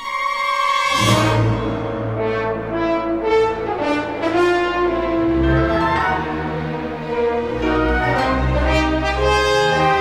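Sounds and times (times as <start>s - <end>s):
orchestral music with horns: 0.0s - 10.0s.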